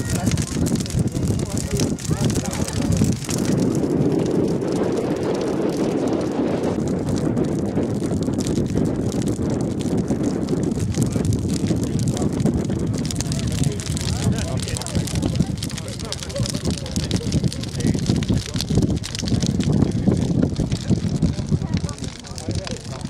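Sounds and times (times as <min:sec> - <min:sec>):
people talking indistinctly: 0:00.0 - 0:06.8, 0:10.6 - 0:23.0
bonfire burning: 0:00.0 - 0:23.0
wind noise on microphone: 0:00.0 - 0:23.0.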